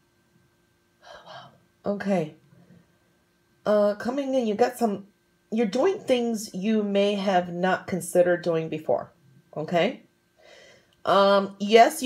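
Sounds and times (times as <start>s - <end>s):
faint steady hum: 0.0s - 12.0s
woman speaking: 1.1s - 2.4s, 3.7s - 10.1s, 11.0s - 12.0s
woman's quick intake of breath: 10.4s - 10.9s.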